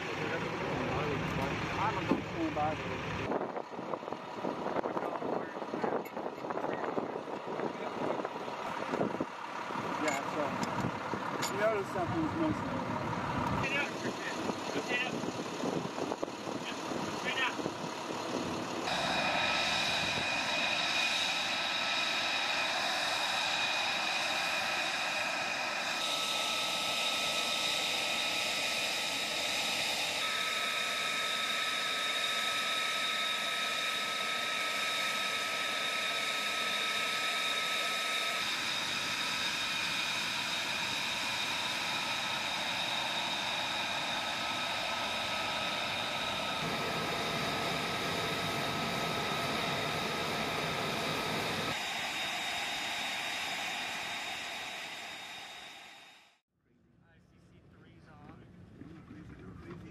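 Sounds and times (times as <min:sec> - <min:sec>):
jet turbine whine: 0:00.0 - 0:56.4
rushing noise: 0:18.8 - 0:56.4.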